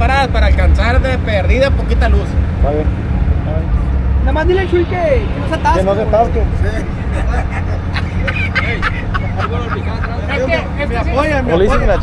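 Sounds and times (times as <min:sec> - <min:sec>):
low rumble: 0:00.0 - 0:10.2
men talking: 0:00.0 - 0:12.0.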